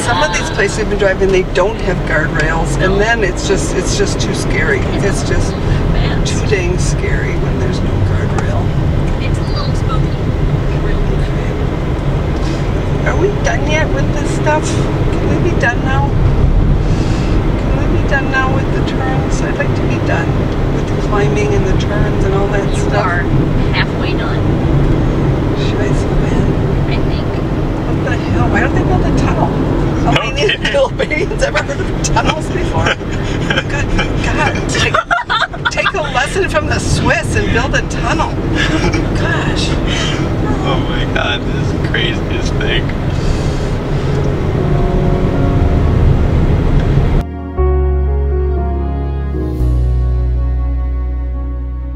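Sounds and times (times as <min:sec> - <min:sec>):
voices talking low: 0:00.0 - 0:16.2, 0:16.9 - 0:44.9
car engine and road rumble: 0:00.0 - 0:51.9.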